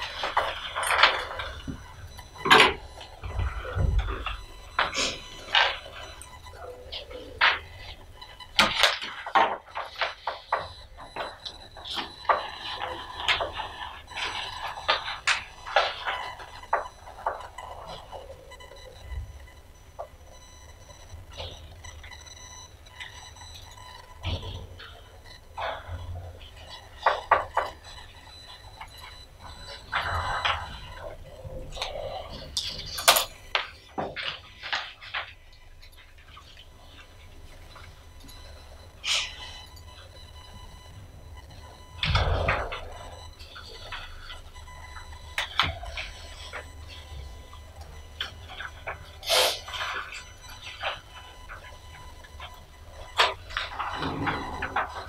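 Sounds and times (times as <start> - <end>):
low room hum: 0.0 - 55.0.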